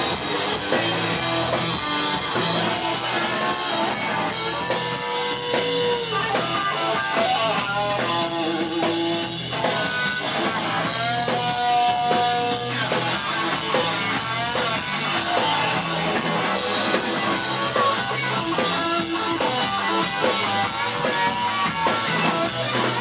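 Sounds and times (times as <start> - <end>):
punk rock band playing: 0.0 - 23.0.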